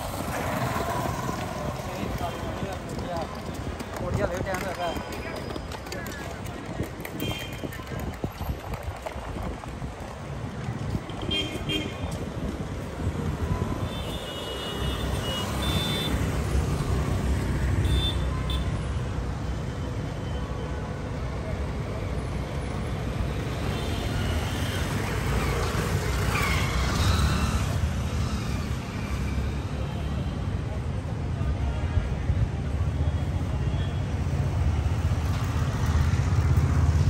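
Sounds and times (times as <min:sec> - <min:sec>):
traffic rumble: 0:00.0 - 0:37.0.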